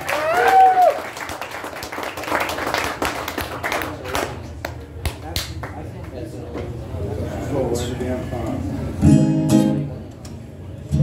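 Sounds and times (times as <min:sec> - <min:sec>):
small audience clapping: 0:00.0 - 0:06.2.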